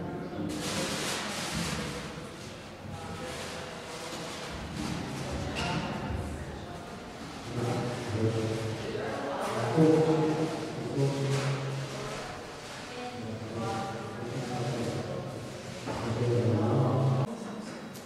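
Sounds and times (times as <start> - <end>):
indistinct voices in large room: 0.0 - 18.0.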